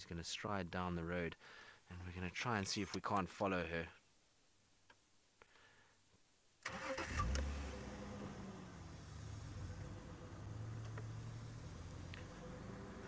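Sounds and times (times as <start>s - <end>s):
vehicle engine starting and idling: 6.6s - 13.0s.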